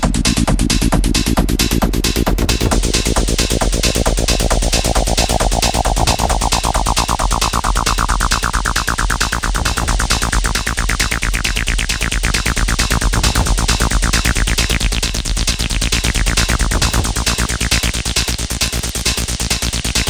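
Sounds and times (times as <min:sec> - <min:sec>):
techno music with pulsing synth: 0:00.0 - 0:20.0.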